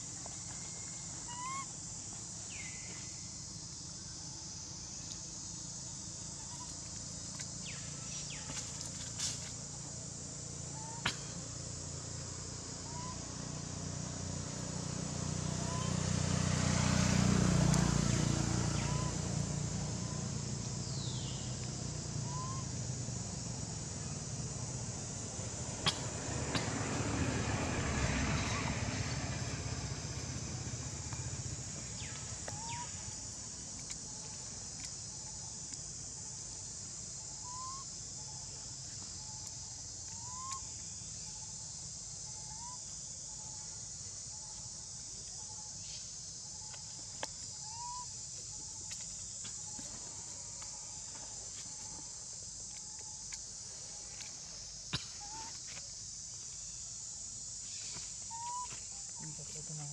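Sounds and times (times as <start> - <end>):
insects buzzing: 0.0 - 59.9
vehicle engine hum: 0.0 - 59.9
rising whistle-like calls: 22.2 - 22.8, 47.7 - 48.2, 58.3 - 58.8.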